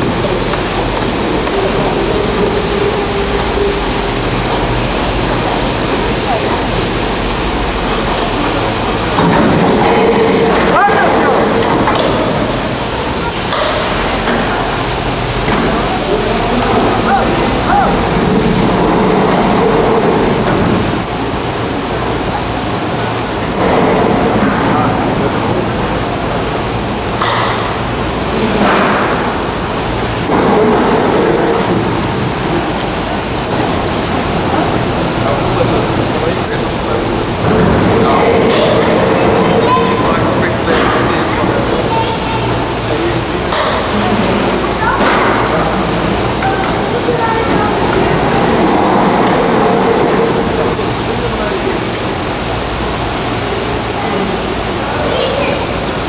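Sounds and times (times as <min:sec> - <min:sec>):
gondola station machinery rumble: 0:00.0 - 0:56.0
voices: 0:00.0 - 0:56.0.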